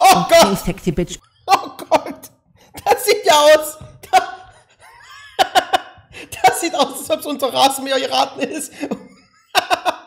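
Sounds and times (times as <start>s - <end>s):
man laughing: 4.1s - 6.8s, 8.5s - 10.0s.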